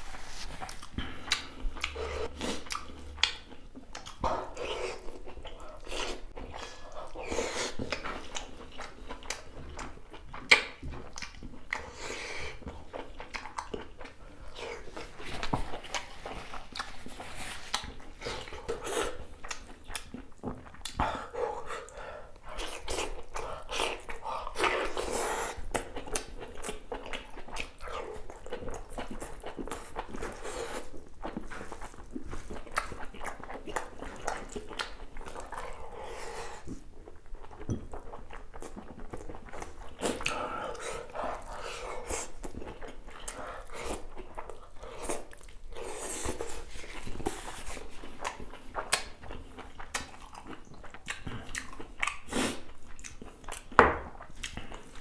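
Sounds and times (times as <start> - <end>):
close chewing with wet mouth sounds: 0.0 - 55.0.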